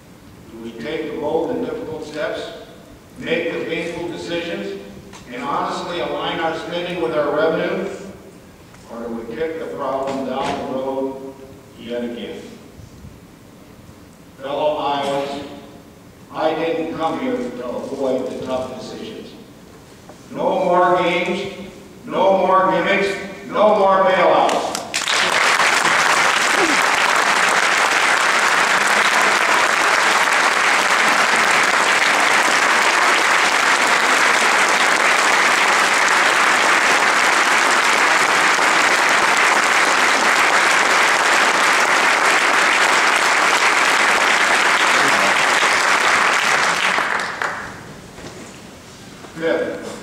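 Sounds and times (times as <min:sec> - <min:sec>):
audience applauding: 0:24.9 - 0:47.8.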